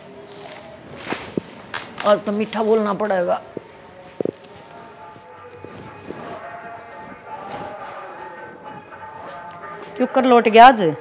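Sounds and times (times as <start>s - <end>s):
sustained chord of held tones: 4.6s - 11.0s.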